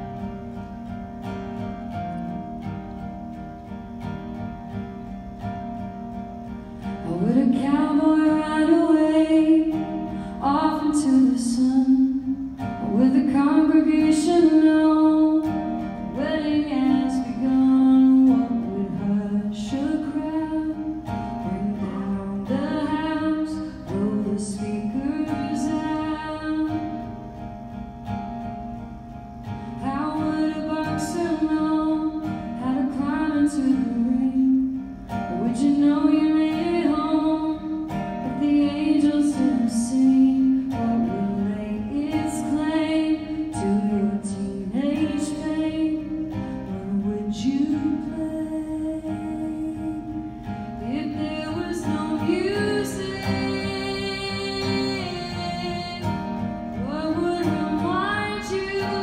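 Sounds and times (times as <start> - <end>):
acoustic guitar: 0.0 - 59.0
woman singing: 6.8 - 27.6, 29.7 - 59.0.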